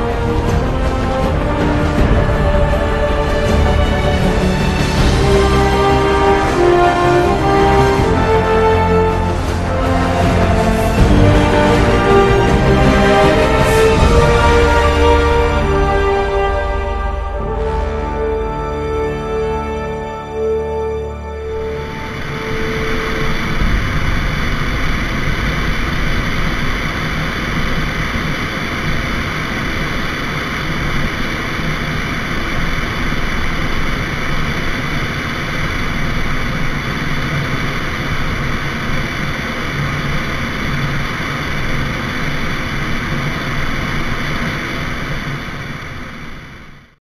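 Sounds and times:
propeller plane engine drone: 0.0s - 47.0s
wind rushing over camera: 21.6s - 47.0s.

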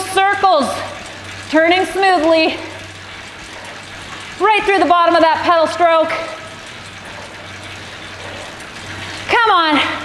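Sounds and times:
indoor bike trainer rushing: 0.0s - 10.0s.

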